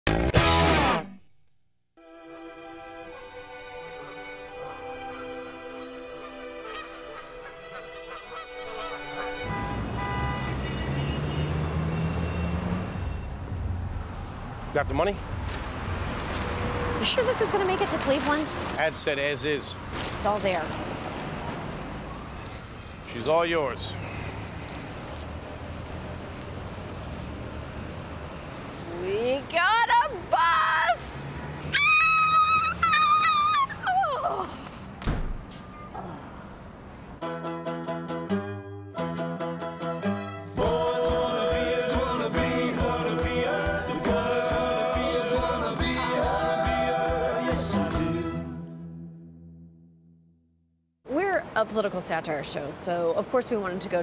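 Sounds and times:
music with long held notes: 2.0 - 9.5, 37.2 - 49.3
city street traffic: 2.4 - 38.3, 39.0 - 49.6, 51.0 - 54.0
geese honking: 4.8 - 11.6
woman squealing with excitement: 31.7 - 34.6.

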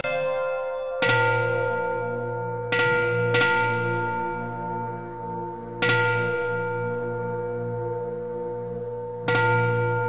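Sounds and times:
bells ringing: 0.0 - 10.0
low steady drone: 1.0 - 10.0.

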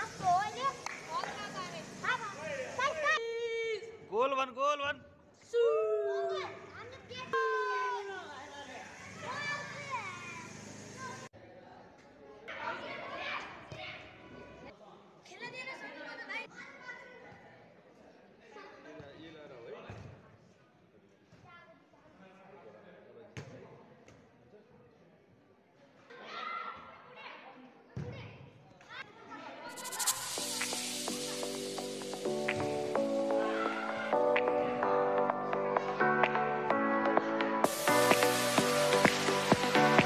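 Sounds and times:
boys shouting: 2.1 - 3.5, 5.5 - 8.4.

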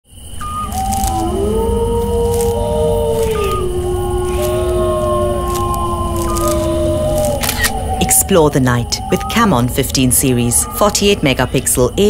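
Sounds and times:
eerie moaning tones: 0.4 - 12.0
low rumble: 0.4 - 12.0
faint crackles: 0.7 - 1.3, 2.0 - 8.3.

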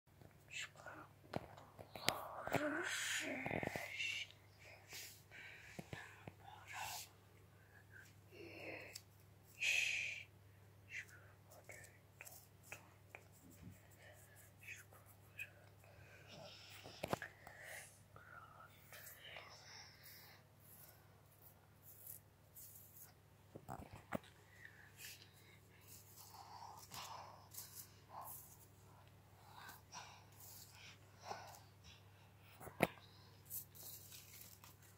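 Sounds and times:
person whispering: 0.2 - 21.0, 21.8 - 34.9.

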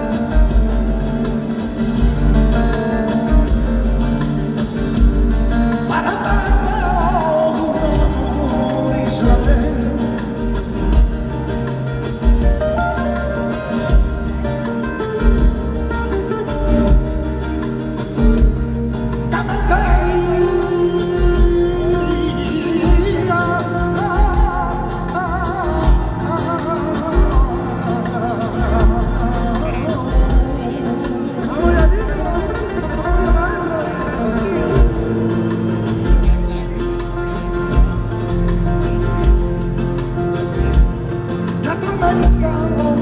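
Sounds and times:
bass and drums: 0.0 - 43.0
live band playing flamenco music: 0.0 - 43.0
strummed acoustic guitars: 0.0 - 43.0
lead voice singing: 5.6 - 11.1, 19.2 - 36.2, 41.5 - 43.0.

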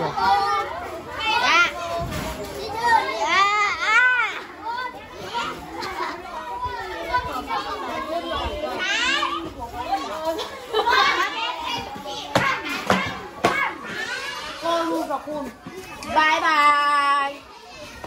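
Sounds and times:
children talking and calling out: 0.0 - 18.0.

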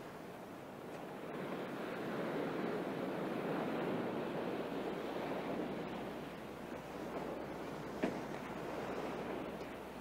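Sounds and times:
ocean surf washing on sand: 0.0 - 10.0.

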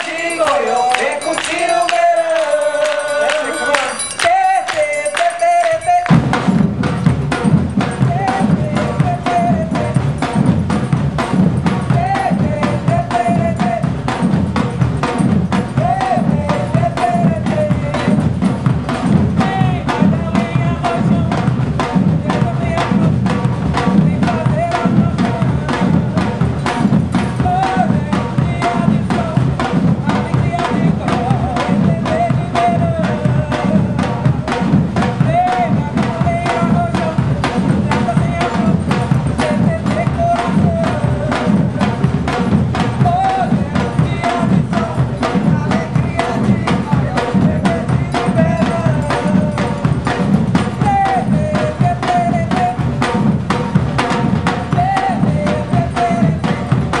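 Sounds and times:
deep bass drums: 6.1 - 57.0.

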